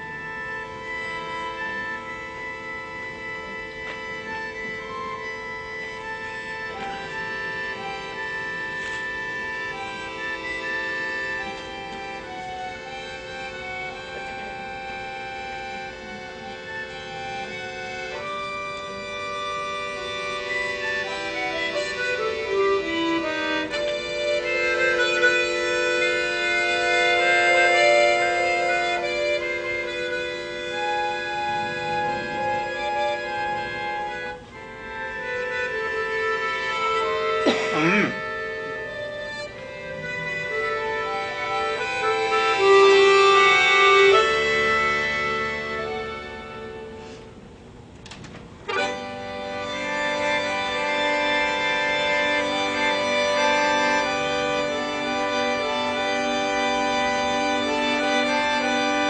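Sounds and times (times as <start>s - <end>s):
button accordion playing chords: 0.0s - 59.0s.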